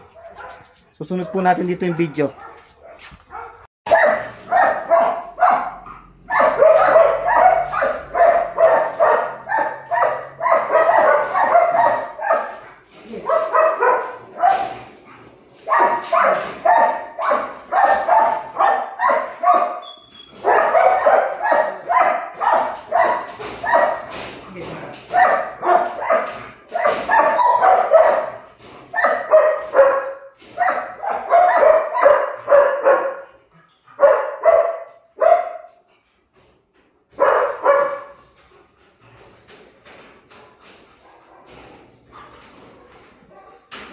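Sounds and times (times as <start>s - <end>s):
dog barking rapidly: 0.0s - 14.9s, 15.6s - 24.2s, 25.1s - 33.3s, 34.0s - 35.7s, 37.1s - 38.2s.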